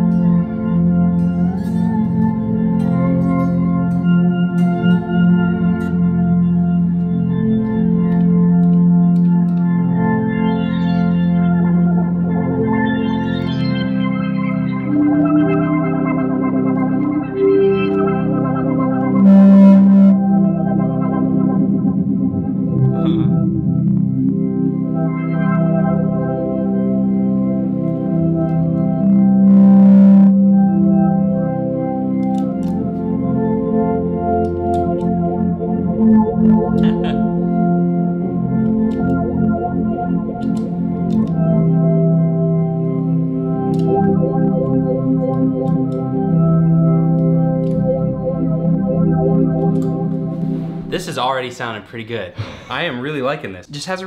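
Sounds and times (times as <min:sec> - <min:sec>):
organ-like looped chords: 0:00.0 - 0:51.6.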